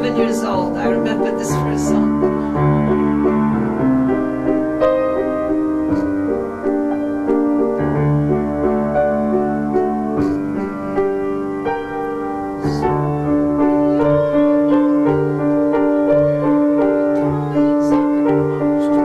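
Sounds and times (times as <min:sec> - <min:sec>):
upright piano melody: 0:00.0 - 0:19.0.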